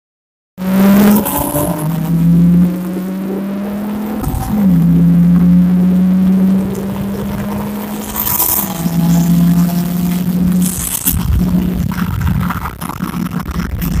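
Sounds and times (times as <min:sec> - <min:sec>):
car engine accelerating at high revs: 0:00.6 - 0:14.0.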